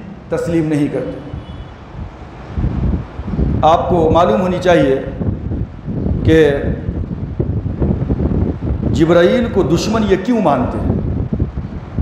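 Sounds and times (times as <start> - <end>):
air buffeting microphone: 0.0 - 12.0.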